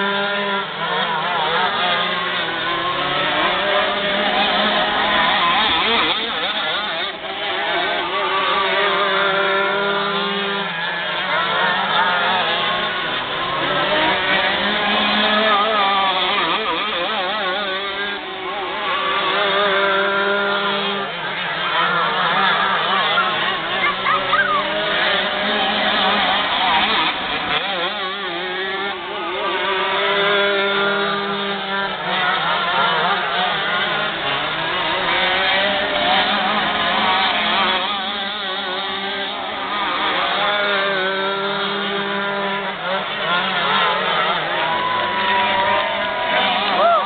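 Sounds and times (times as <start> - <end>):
kart engines racing: 0.0 - 47.0.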